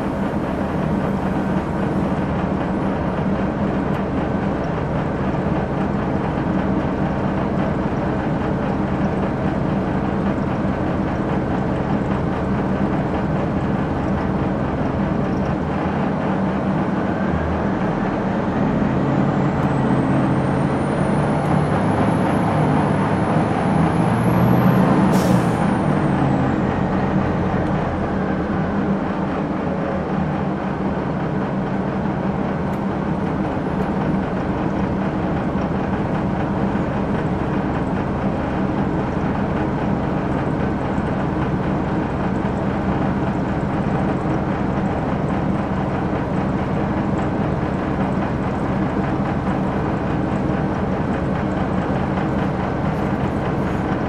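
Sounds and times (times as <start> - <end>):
bus diesel engine running: 0.0 - 54.0.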